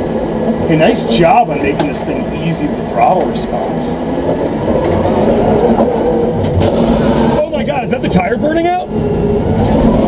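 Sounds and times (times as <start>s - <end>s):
drivetrain and road noise: 0.0s - 10.0s
electric motors running under load: 4.9s - 7.6s, 8.9s - 10.0s.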